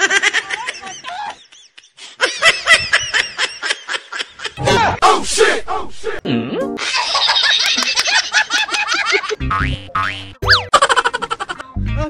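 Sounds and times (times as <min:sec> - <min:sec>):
background music: 0:06.2 - 0:06.9, 0:09.2 - 0:10.8, 0:11.5 - 0:12.0
cartoon boing: 0:09.4 - 0:10.7.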